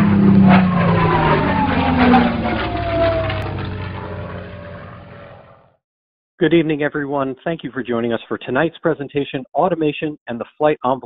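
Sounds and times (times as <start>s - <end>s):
aircraft engine drone passing: 0.0s - 5.8s.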